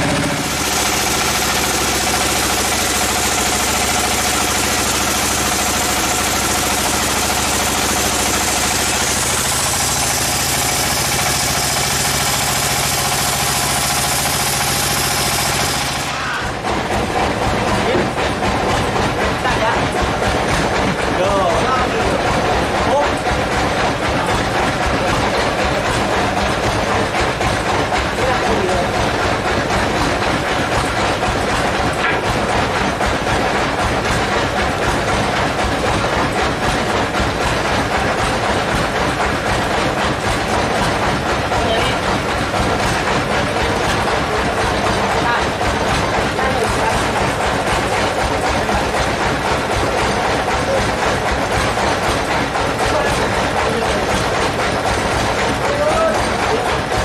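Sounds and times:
sawmill machinery rattling: 0:00.0 - 0:57.0.

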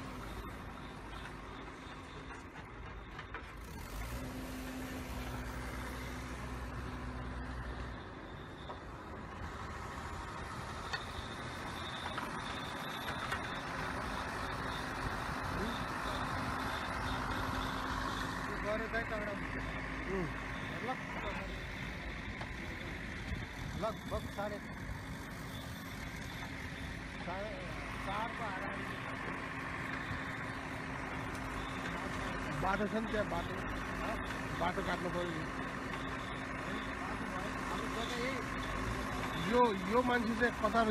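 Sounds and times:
earthmoving machine engine running: 0:00.0 - 0:40.9
voices: 0:11.7 - 0:25.3, 0:25.9 - 0:40.9.

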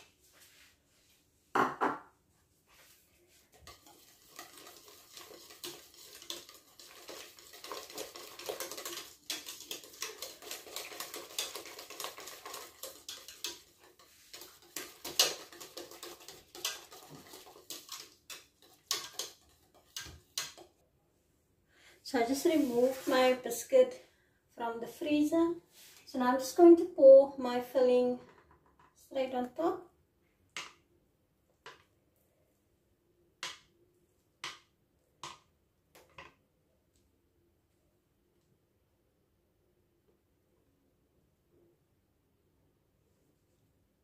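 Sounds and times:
knock: 0:01.6 - 0:02.1
metal whisk scraping pot: 0:03.3 - 0:20.8.

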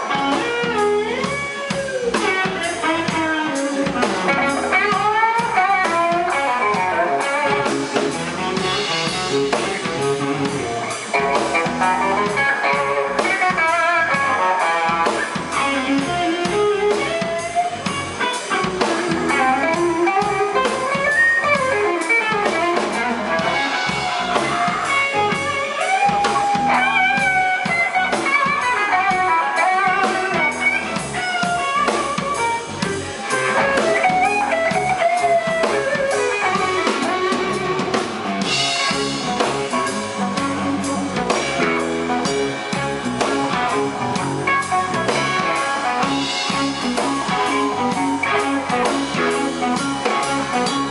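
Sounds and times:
drum kit: 0:00.0 - 0:50.9
lead electric guitar bending notes: 0:00.0 - 0:50.9
second guitar: 0:00.0 - 0:50.9.

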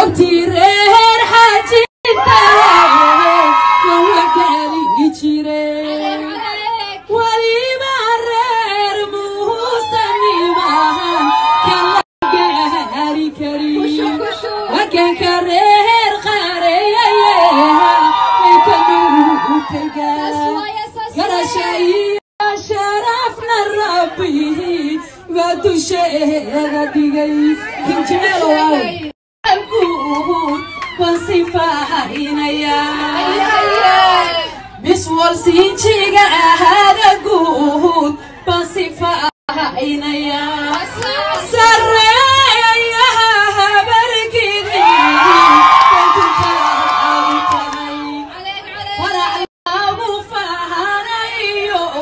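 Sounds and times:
woman singing into a microphone: 0:00.0 - 0:52.0.

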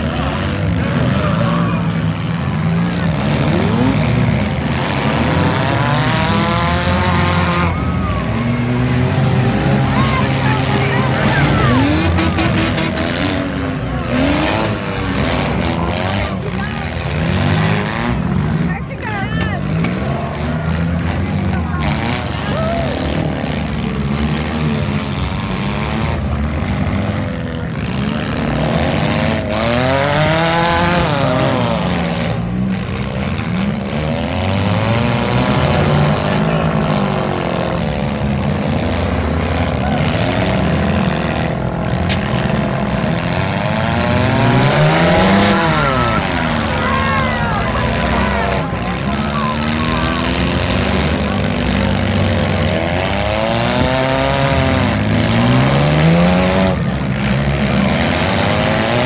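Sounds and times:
car engines revving: 0:00.0 - 0:59.0
cars crashing: 0:00.0 - 0:59.0.

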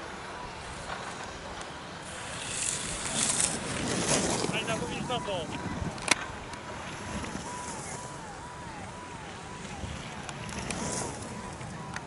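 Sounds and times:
outdoor rush: 0:00.0 - 0:12.0
skis scraping on snow: 0:00.7 - 0:05.9, 0:09.6 - 0:11.6.

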